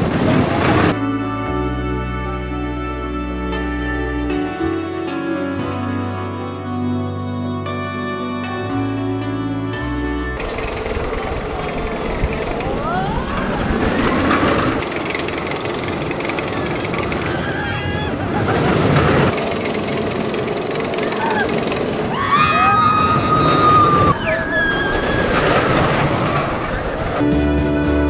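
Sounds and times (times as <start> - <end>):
roller coaster wheels rumbling on track: 0.0 - 1.0, 10.4 - 27.5
riders shouting and screaming: 10.4 - 14.4, 16.3 - 19.3, 20.8 - 27.2.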